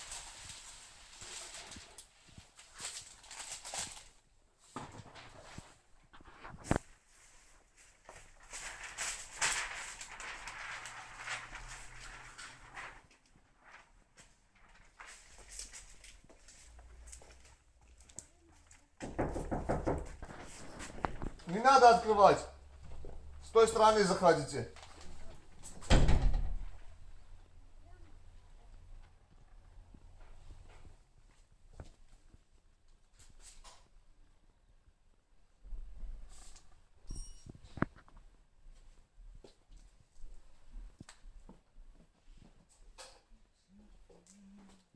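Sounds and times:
plastic film rustling and crinkling: 0:00.0 - 0:18.9, 0:20.0 - 0:25.9.

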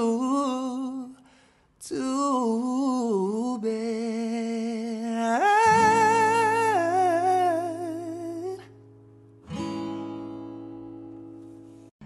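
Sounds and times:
plucked acoustic guitar: 0:04.0 - 0:12.0.

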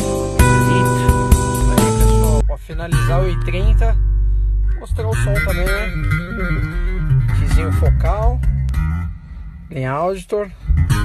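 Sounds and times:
song with guitar voice and deep bass: 0:00.0 - 0:11.0.

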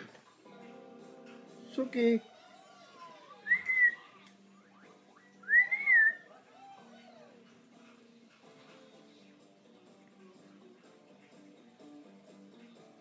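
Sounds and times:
faint background music: 0:00.0 - 0:13.0
parrot whistling: 0:03.4 - 0:04.0, 0:04.8 - 0:06.3.

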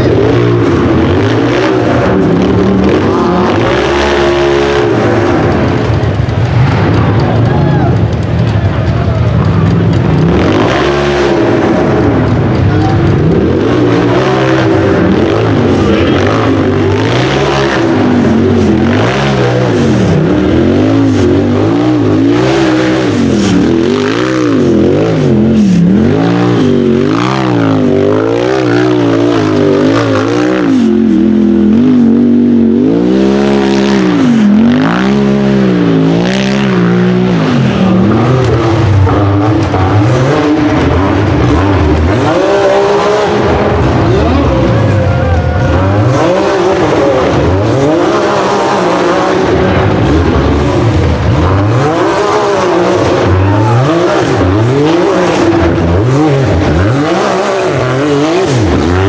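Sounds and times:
buggy engine revving hard: 0:00.0 - 0:59.0.

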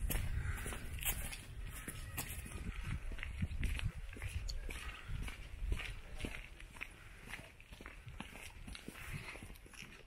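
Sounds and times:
footsteps on gravel: 0:00.0 - 0:10.0.

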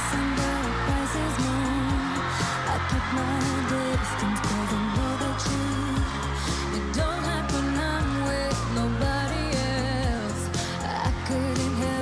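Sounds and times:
drum machine beat: 0:00.0 - 0:12.0
synth bass: 0:00.0 - 0:12.0
woman singing: 0:00.0 - 0:12.0.

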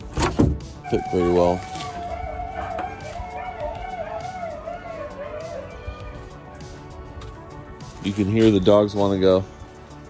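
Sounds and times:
dogs whining: 0:00.9 - 0:06.4.

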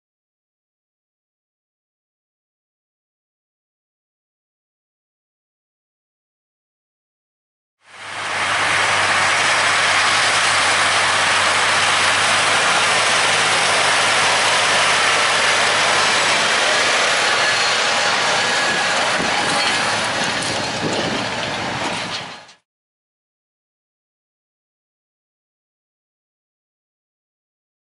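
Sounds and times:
hiss of tines working soil: 0:07.9 - 0:20.2
diesel tractor engine under load: 0:07.9 - 0:22.6.

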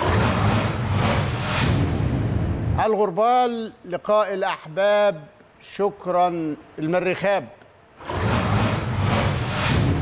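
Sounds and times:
loud noisy whoosh: 0:00.0 - 0:02.8, 0:08.0 - 0:10.0.

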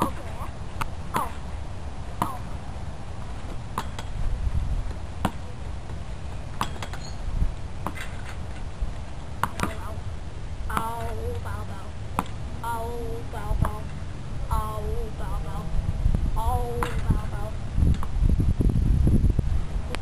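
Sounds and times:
plastic bat hitting ball: 0:03.8 - 0:04.2.

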